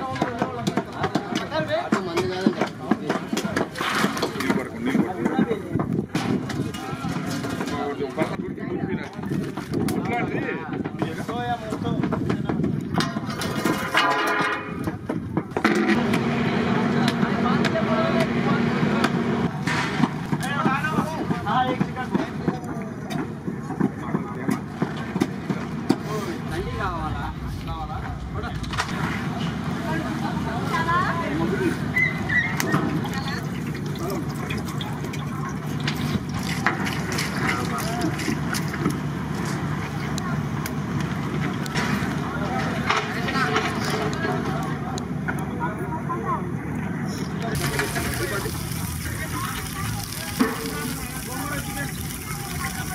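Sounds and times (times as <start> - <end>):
people talking: 0.0 - 15.1, 16.0 - 19.6, 20.3 - 52.9
indistinct background voices: 20.6 - 31.9
steady low hum: 25.4 - 31.5
prawns sizzling in hot oil: 47.6 - 52.9.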